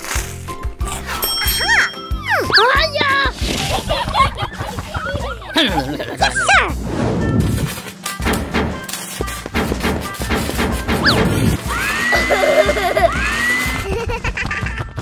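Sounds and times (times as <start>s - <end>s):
cartoon background music: 0.0s - 15.0s
rapid banging and crashing impacts: 7.4s - 12.1s.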